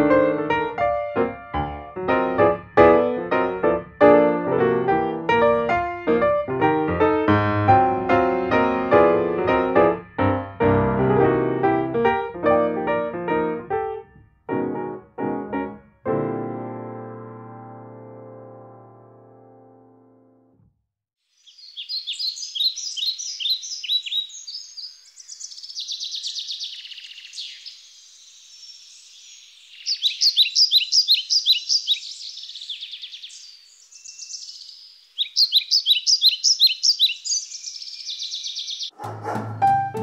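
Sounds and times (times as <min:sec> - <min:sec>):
soft piano chord: 0:00.0 - 0:20.6, 0:39.2 - 0:40.0
birds chirping rapidly: 0:21.4 - 0:39.1.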